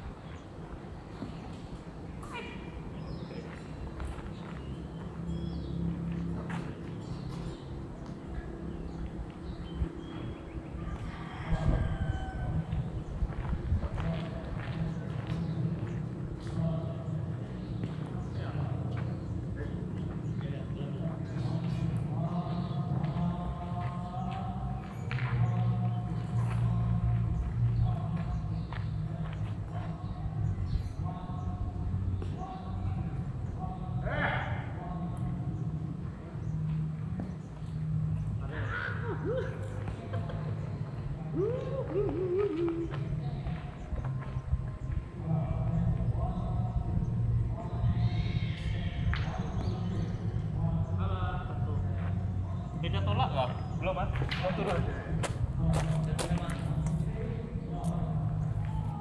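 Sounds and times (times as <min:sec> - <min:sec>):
steady low rumble: 0:00.0 - 0:52.8
people talking at a distance: 0:08.2 - 0:36.6.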